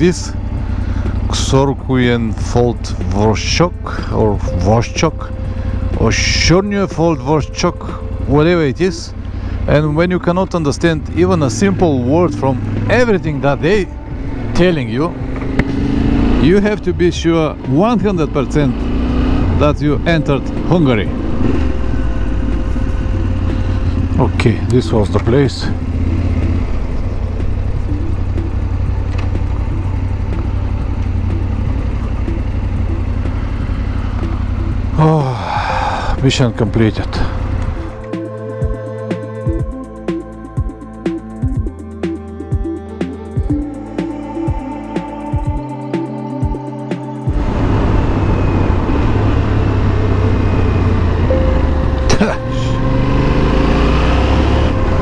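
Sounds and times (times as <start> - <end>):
motorcycle engine low rumble: 0.0 - 55.0.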